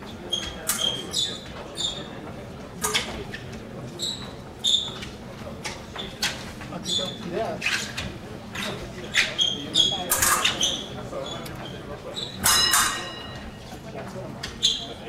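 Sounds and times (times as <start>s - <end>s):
rubber shoes squeaking on floor: 0.2s - 2.2s, 2.8s - 12.6s, 14.4s - 15.0s.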